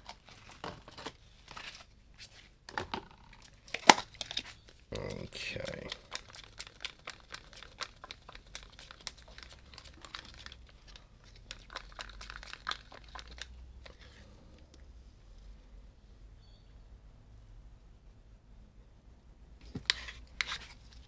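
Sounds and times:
crinkling and clicks of handling: 0.0s - 14.9s.

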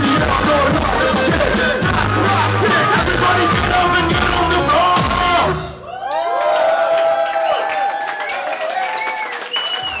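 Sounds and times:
crowd cheering and whooping: 5.8s - 10.0s
scattered clapping: 6.4s - 10.0s.

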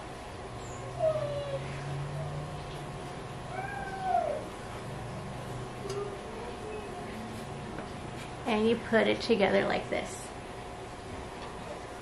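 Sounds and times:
cat meowing: 3.5s - 4.5s.

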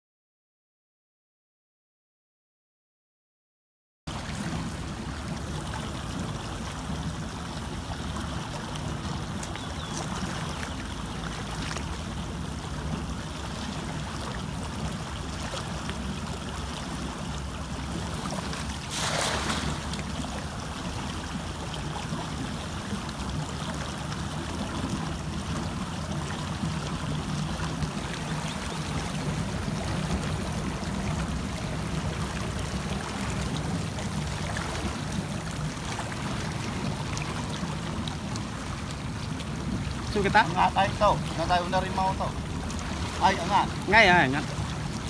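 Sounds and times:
water lapping: 4.1s - 45.0s
cast net splashing into water: 18.1s - 20.4s.

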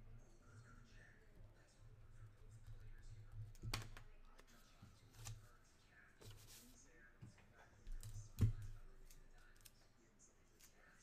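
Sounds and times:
faint clicks and taps: 2.4s - 5.4s.

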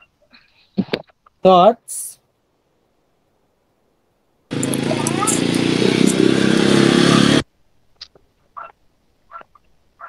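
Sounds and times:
vehicle engine: 4.5s - 7.5s
street noise: 4.5s - 9.6s.

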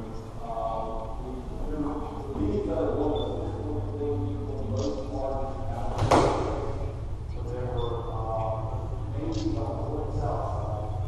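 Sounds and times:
people talking: 0.0s - 11.0s
sharp thump: 5.9s - 6.7s.

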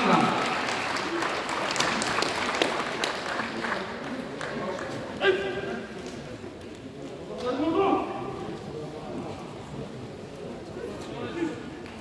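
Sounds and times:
audience clapping: 0.0s - 5.2s.

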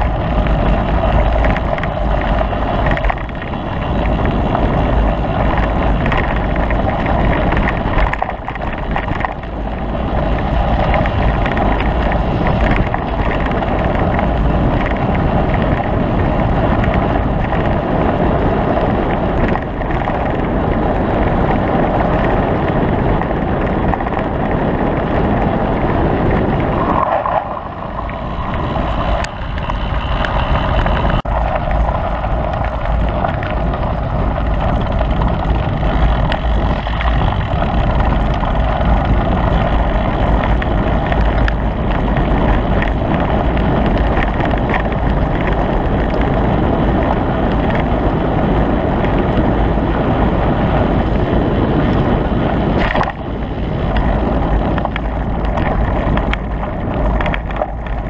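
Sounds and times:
tyres rumbling over gravel: 0.0s - 58.0s
wind on microphone: 0.0s - 58.0s.

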